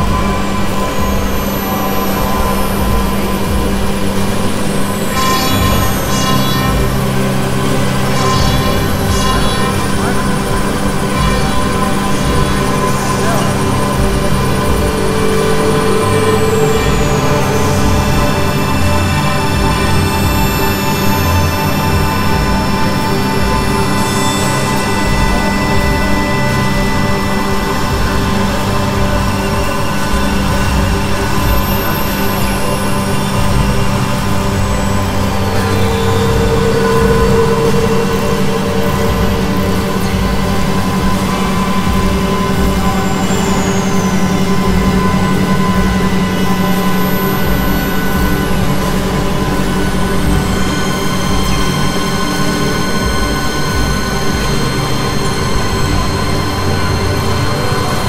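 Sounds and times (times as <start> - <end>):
bright mid synth tone: 0.0 - 58.0
layered synthesizer drone: 0.0 - 58.0
thin high tones sliding downward: 0.0 - 58.0.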